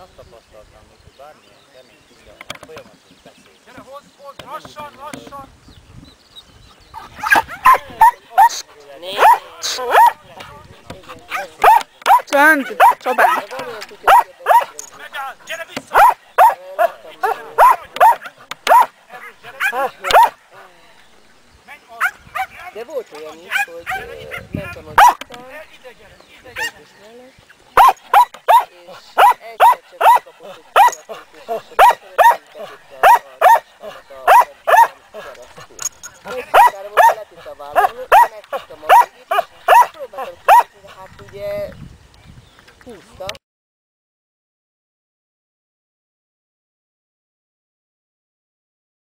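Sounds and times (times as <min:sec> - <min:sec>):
dog barking: 0:07.0 - 0:08.6, 0:09.2 - 0:10.2, 0:11.3 - 0:14.8, 0:15.9 - 0:20.4, 0:22.0 - 0:22.8, 0:23.5 - 0:25.2, 0:27.8 - 0:31.1, 0:31.8 - 0:35.3, 0:36.5 - 0:37.2, 0:37.8 - 0:40.7.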